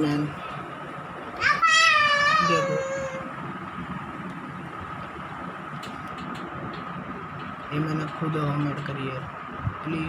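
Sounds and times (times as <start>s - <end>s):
high-pitched wavering cry: 1.4s - 3.3s.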